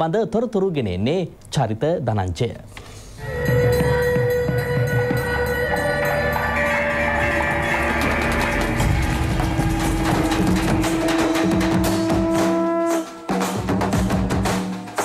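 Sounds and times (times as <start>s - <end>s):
wind instrument holding long notes: 3.2s - 14.8s
drumming: 3.2s - 15.0s.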